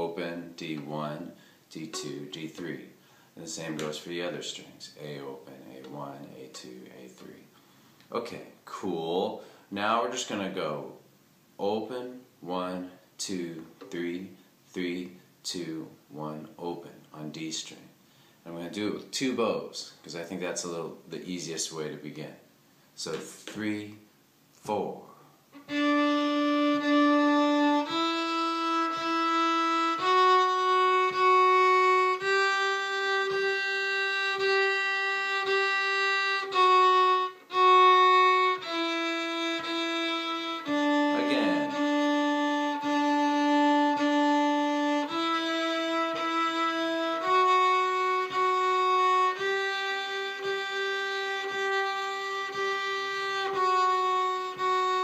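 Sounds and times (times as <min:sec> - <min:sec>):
fiddle bowed slowly: 0:00.0 - 0:02.9, 0:25.6 - 0:55.0.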